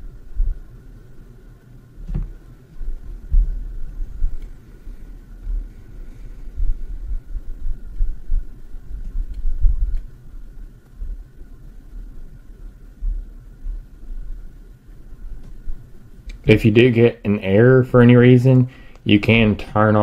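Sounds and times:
faint high whine: 0.0 - 20.0
low uneven rumble: 0.0 - 20.0.

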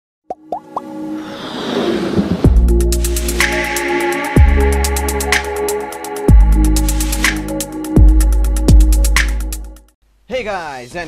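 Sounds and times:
pops gliding upward in pitch: 0.3 - 3.8
musical swell of held tones: 0.9 - 6.8.

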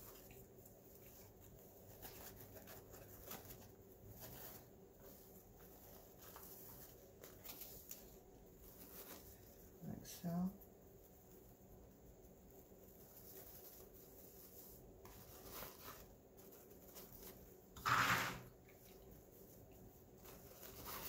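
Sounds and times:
ribbon rustling: 0.0 - 9.9, 11.0 - 21.0
ribbon crinkle: 0.0 - 21.0.

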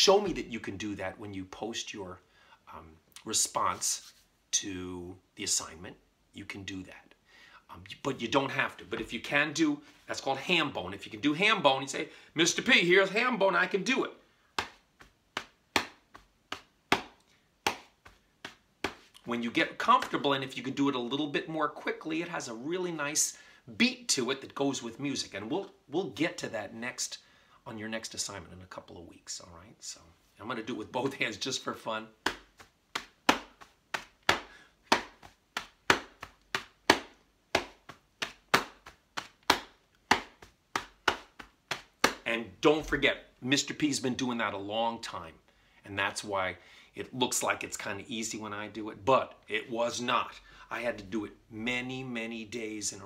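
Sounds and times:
hand slapping chest and thigh: 14.4 - 20.5, 31.0 - 43.1.

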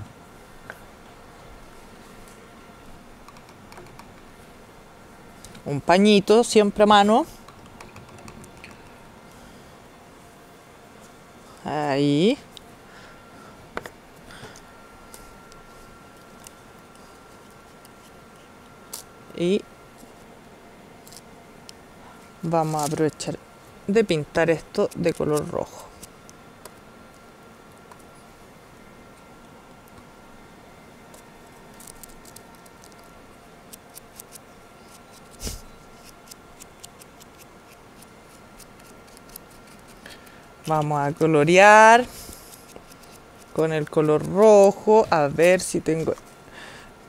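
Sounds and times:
faint high whine: 0.0 - 47.0.

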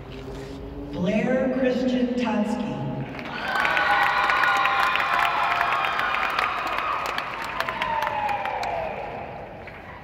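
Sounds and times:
audience cheering and clapping: 3.1 - 10.0
long held whoops: 3.3 - 10.0.

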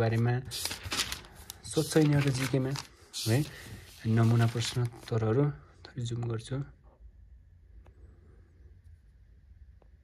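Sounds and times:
person speaking: 0.0 - 6.9
book pages flipping: 0.5 - 5.2.

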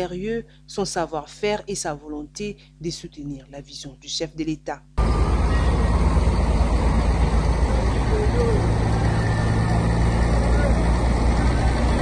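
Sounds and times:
loud dense noise: 5.0 - 12.0
truck engine droning: 5.0 - 12.0.

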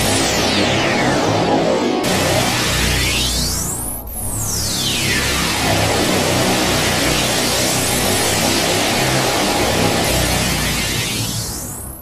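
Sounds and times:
dense wash of synthesized piano notes: 0.0 - 11.0.

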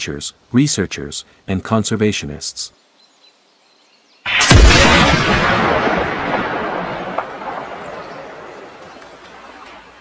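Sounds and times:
loud rifle shot: 4.3 - 8.5
echo of rifle shot: 4.3 - 8.8.

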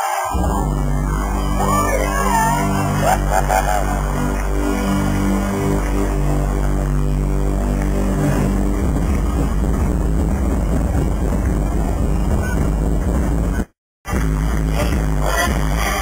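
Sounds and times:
distorted electronic concert music: 0.0 - 16.0.

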